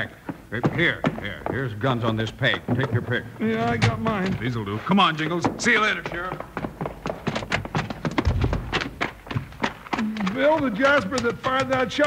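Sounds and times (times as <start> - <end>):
knocks and clicks: 0.6 - 6.4, 7.2 - 12.0
heavy low thump: 8.0 - 9.6.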